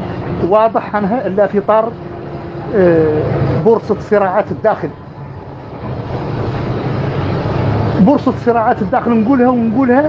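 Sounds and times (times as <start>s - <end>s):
low rumbling hum: 0.0s - 10.0s.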